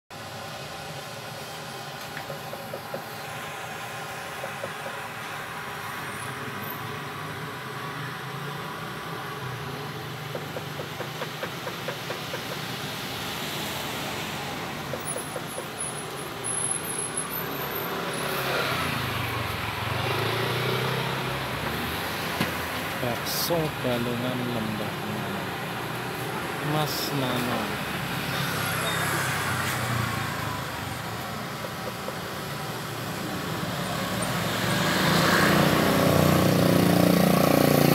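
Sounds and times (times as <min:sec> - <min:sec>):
cars passing on street: 0:00.1 - 0:37.9.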